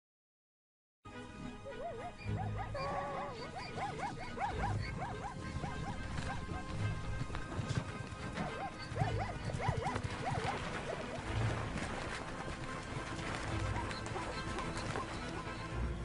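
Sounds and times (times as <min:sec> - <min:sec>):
background music: 0:01.1 - 0:16.0
zebras barking: 0:01.6 - 0:15.9.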